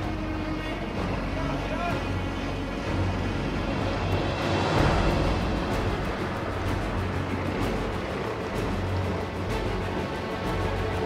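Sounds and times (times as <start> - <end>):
boat engine humming: 0.0 - 11.0.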